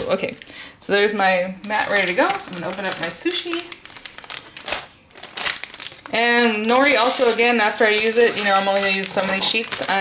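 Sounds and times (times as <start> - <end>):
plastic bag crinkling: 1.6 - 10.0.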